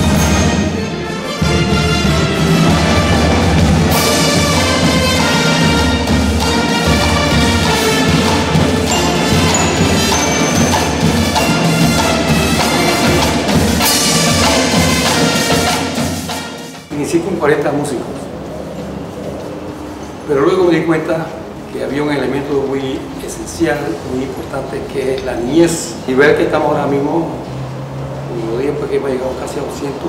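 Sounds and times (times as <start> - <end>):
marching band playing: 0.0 - 19.7.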